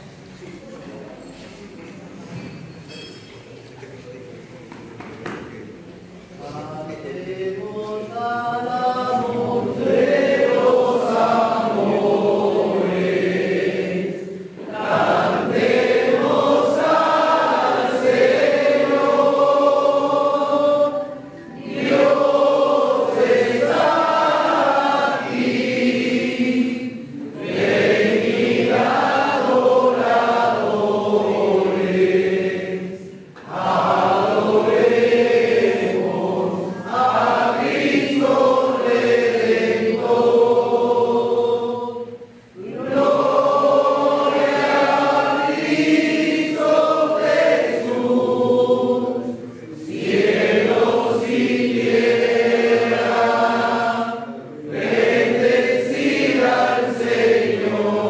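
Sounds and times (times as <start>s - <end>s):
group singing a hymn: 6.4s - 58.0s.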